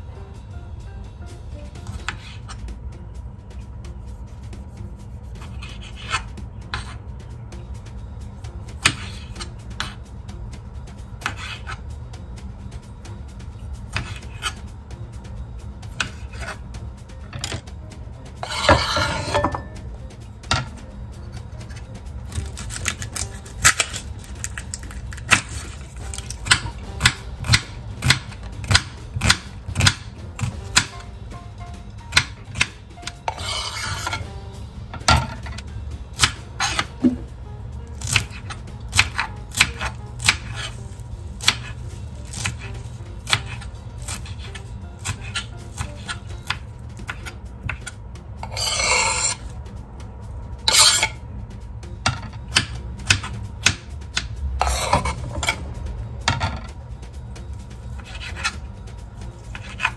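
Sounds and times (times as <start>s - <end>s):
knife scraping board: 1.8s - 2.6s, 4.3s - 7.0s, 8.8s - 10.0s, 11.2s - 11.8s, 13.9s - 14.6s, 15.9s - 16.6s, 18.4s - 19.7s, 32.2s - 34.4s, 36.2s - 37.3s, 38.0s - 49.5s, 50.7s - 51.2s, 52.6s - 55.6s, 58.0s - 58.6s, 59.5s - 59.9s
knife chopping on cutting board: 8.8s - 10.0s, 13.9s - 14.6s, 21.7s - 31.1s, 32.0s - 34.4s, 38.0s - 49.4s, 52.1s - 55.6s.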